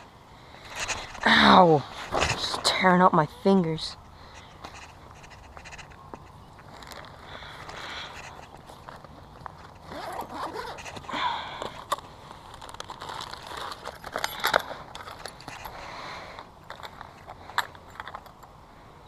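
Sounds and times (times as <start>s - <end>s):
rustling fabric and scraping: 0.6s - 3.0s, 4.2s - 18.3s
backpack zipper pulled: 9.8s - 11.1s.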